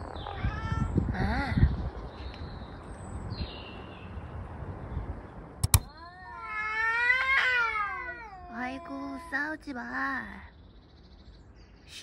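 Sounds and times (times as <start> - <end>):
cat yowling: 0.1 - 1.1, 5.9 - 9.5
sharp double click: 5.6 - 5.9.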